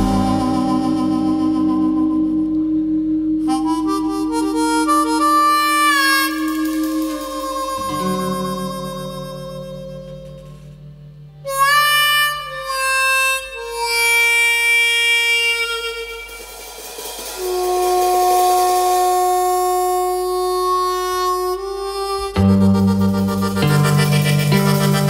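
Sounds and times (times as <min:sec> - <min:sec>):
band loud low chord: 0:00.0 - 0:25.0
harmonica slow held notes: 0:00.0 - 0:25.0.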